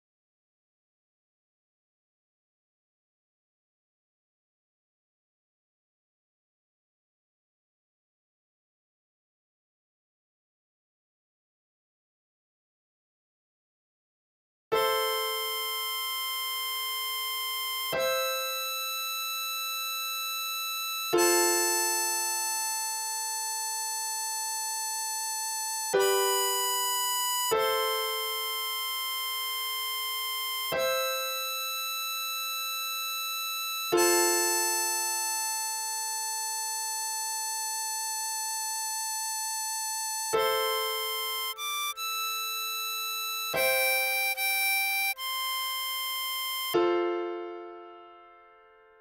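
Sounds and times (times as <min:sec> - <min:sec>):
harmonica held notes: 0:14.8 - 0:48.0
sustained chord accompaniment: 0:21.1 - 0:32.4, 0:33.8 - 0:49.0
harmonica note held: 0:40.8 - 0:46.9.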